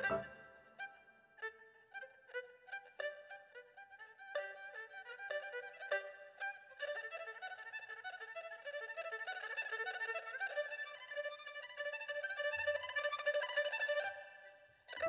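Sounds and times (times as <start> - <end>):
bowed fiddle solo: 0.0 - 15.0.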